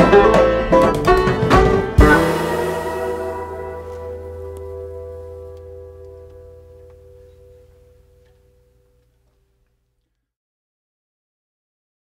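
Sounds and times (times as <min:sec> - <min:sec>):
folk song chord ringing out: 0:00.0 - 0:09.0.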